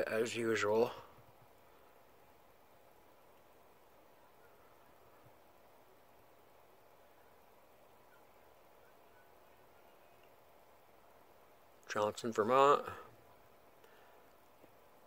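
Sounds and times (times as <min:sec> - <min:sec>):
faint recording hiss: 0:00.0 - 0:15.0.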